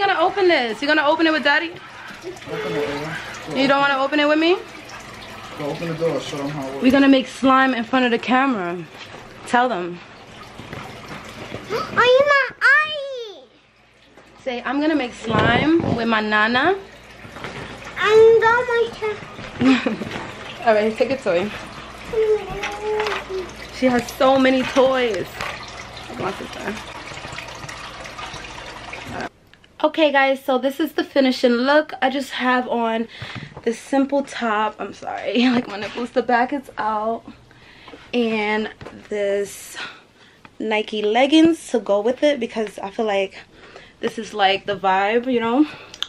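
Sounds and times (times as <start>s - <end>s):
woman speaking: 14.4s - 16.9s, 20.6s - 21.6s, 23.8s - 25.5s, 26.1s - 26.8s, 29.1s - 37.3s, 38.2s - 40.0s, 40.6s - 45.8s.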